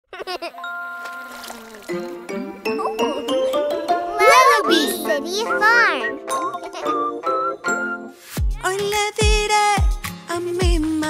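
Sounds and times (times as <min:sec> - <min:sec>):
child giggling: 0:00.1 - 0:00.7, 0:06.6 - 0:07.1.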